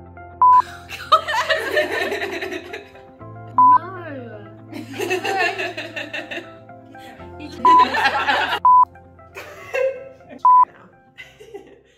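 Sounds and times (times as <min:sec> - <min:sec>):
electronic censor bleep: 0:00.4 - 0:00.6, 0:03.6 - 0:03.8, 0:08.6 - 0:08.9, 0:10.4 - 0:10.6
people laughing and talking: 0:00.6 - 0:03.2, 0:04.0 - 0:08.7, 0:09.4 - 0:10.6.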